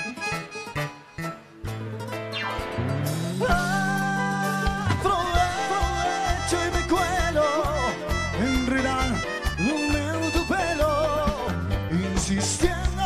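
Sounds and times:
wavering melodic lead line: 0:00.0 - 0:12.8
pulsing bass notes: 0:00.0 - 0:13.0.

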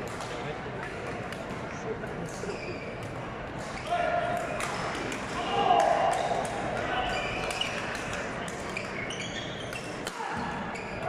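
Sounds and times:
chatter of voices in echoing hall: 0:00.0 - 0:11.0
badminton rackets hitting shuttlecock: 0:03.0 - 0:06.8.

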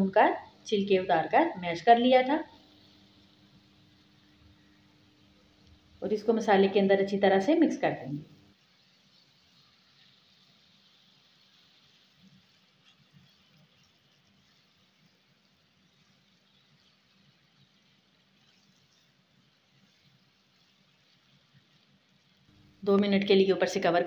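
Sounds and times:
faint sizzling: 0:00.0 - 0:24.0
spatula stirring in a frying pan: 0:08.3 - 0:23.0.

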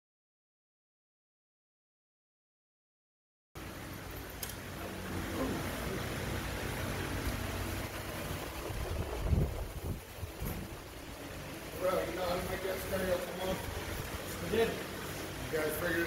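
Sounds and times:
wind rumble on microphone: 0:08.4 - 0:11.2.

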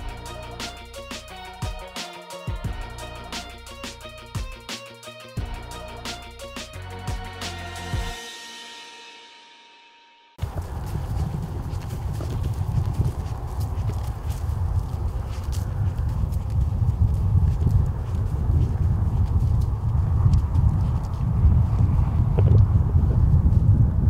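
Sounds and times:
footsteps crunching through snow: 0:10.4 - 0:22.3
low microphone rumble: 0:10.4 - 0:24.0.

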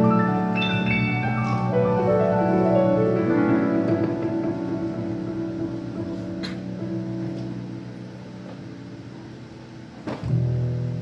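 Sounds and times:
grand piano chords: 0:00.0 - 0:11.0.

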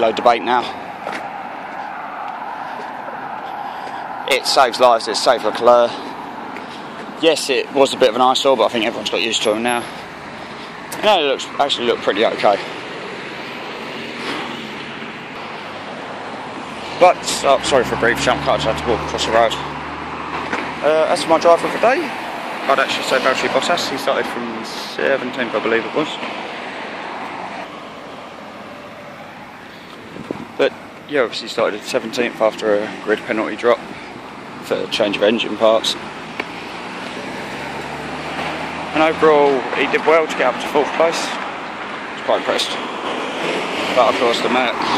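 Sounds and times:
road traffic: 0:00.0 - 0:44.9
rushing outdoor background noise: 0:00.0 - 0:44.9.

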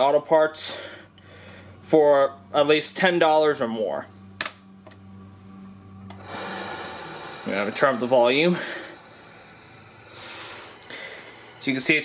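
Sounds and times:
tv static hiss: 0:06.2 - 0:12.0.

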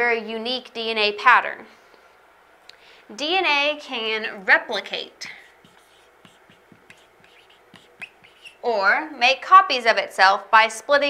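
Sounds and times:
marker squeaking on whiteboard: 0:05.3 - 0:08.6.

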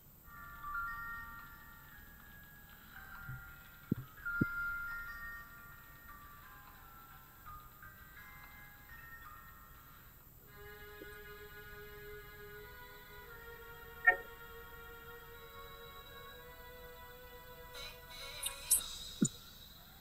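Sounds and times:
bell-like chime melody: 0:00.3 - 0:10.2.

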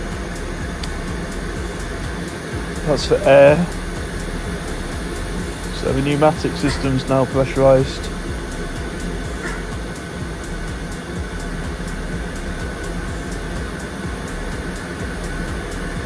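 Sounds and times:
auxiliary power unit drone: 0:00.0 - 0:16.0
faint steady whine: 0:00.0 - 0:16.0.

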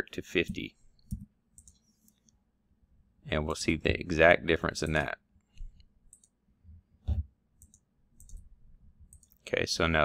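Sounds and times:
computer mouse clicks: 0:01.0 - 0:02.4, 0:05.5 - 0:06.4, 0:07.6 - 0:08.5, 0:09.1 - 0:09.4.

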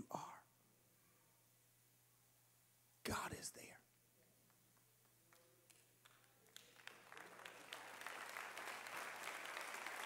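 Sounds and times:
faint low hum: 0:00.0 - 0:07.8
man's voice: 0:03.0 - 0:03.8.

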